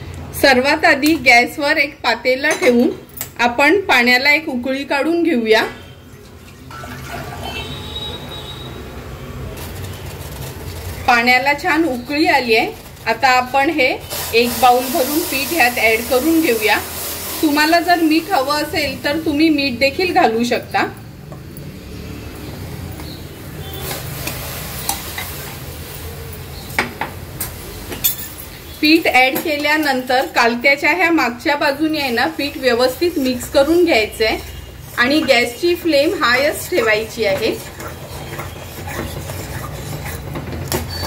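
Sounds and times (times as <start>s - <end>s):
water boiling in a pot: 5.9s - 20.0s, 23.0s - 26.7s, 29.9s - 41.0s
water poured into a metal pot: 6.1s - 8.1s.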